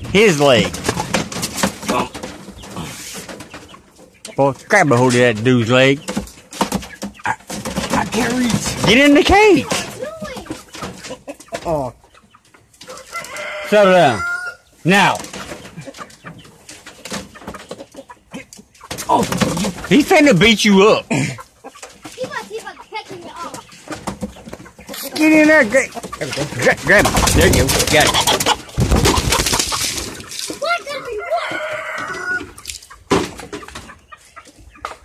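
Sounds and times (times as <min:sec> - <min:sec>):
chickens clucking: 0:00.0 - 0:35.0
scuffling and knocking in wire cage: 0:00.0 - 0:35.0
rooster squawking: 0:12.9 - 0:14.7, 0:26.2 - 0:32.6.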